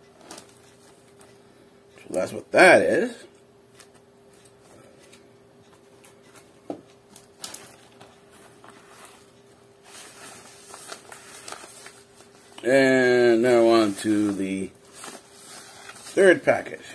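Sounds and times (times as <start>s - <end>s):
faint steady hum: 0.0s - 16.9s
packaging rustling: 0.2s - 1.2s, 7.1s - 12.7s, 13.3s - 16.5s.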